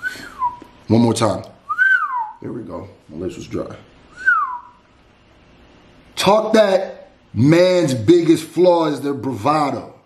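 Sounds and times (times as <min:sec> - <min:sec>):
man whistling short note: 0:00.0 - 0:00.7, 0:01.7 - 0:02.4, 0:04.1 - 0:04.8.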